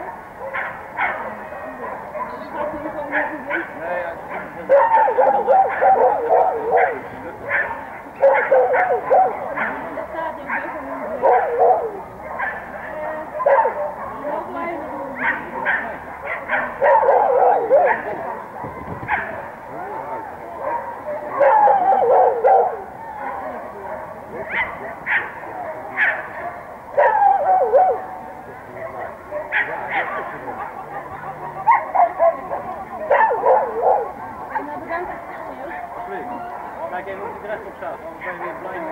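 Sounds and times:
dog barking: 0.0s - 9.9s, 10.5s - 19.5s, 20.6s - 30.4s, 31.6s - 34.2s
people's voices: 0.0s - 38.9s
dog yipping and barking: 4.7s - 9.8s, 27.0s - 28.0s.

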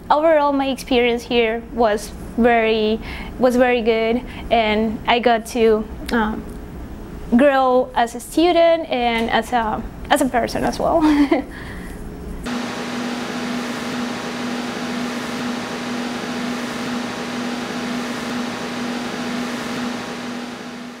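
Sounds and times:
steady hum with hiss: 0.0s - 21.0s
woman laughing: 11.0s - 11.6s.

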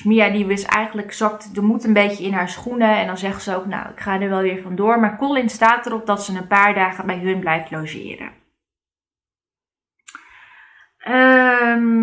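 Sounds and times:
person speaking: 0.0s - 8.3s
mouth click: 10.1s - 10.3s.

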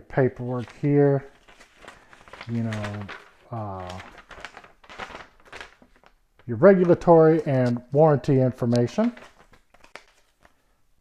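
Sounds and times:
paper rustling: 0.4s - 10.7s.

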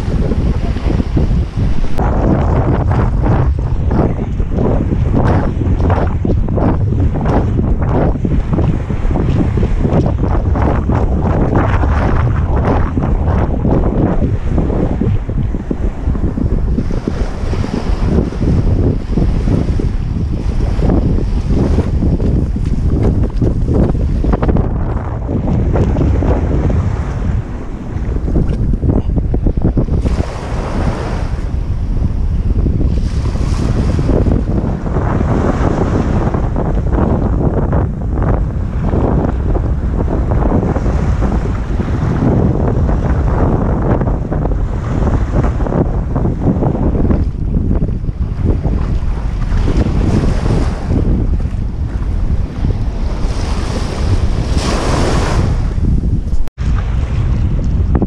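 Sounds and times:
small waves washing on shore: 0.0s - 58.0s
wind buffeting microphone: 0.0s - 58.0s.

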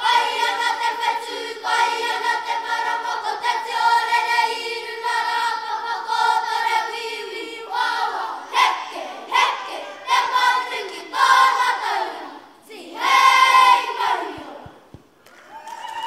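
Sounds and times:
children singing together: 0.0s - 14.9s.

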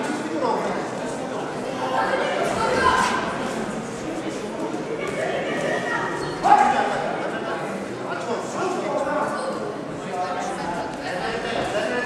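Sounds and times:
crowd voices echoing in a hall: 0.0s - 12.0s.

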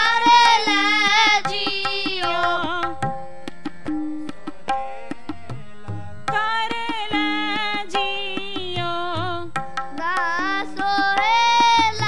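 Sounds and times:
harmonium: 0.0s - 12.0s
tabla strokes: 0.0s - 12.0s.

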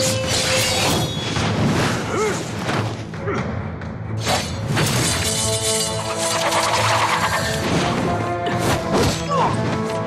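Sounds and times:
dramatic music: 0.0s - 10.0s.

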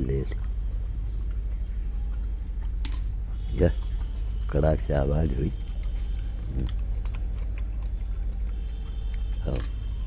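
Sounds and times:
monkey chewing hard fruit: 0.0s - 10.0s
steady low rumble: 0.0s - 10.0s
faint crunching clicks: 0.2s - 10.0s.

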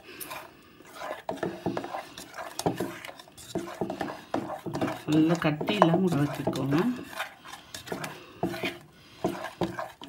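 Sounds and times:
fingers stirring batter in bowl: 0.0s - 10.0s.

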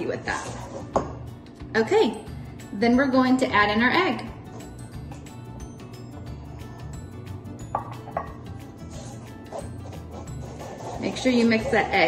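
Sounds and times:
background music with steady beat: 0.6s - 12.0s
wooden spoon knocking metal bowl: 7.6s - 8.4s.

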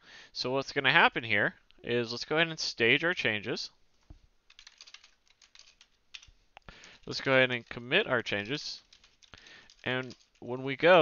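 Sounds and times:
faint keyboard typing: 4.0s - 11.0s.

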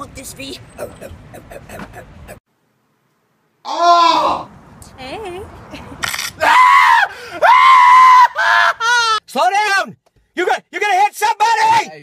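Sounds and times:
young man screaming: 3.7s - 4.5s, 6.4s - 9.2s, 11.4s - 12.0s.

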